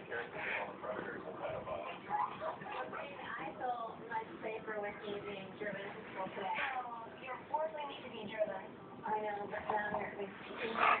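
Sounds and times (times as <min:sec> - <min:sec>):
dogs making high-pitched play noises: 0:01.4 - 0:03.2, 0:10.6 - 0:11.0.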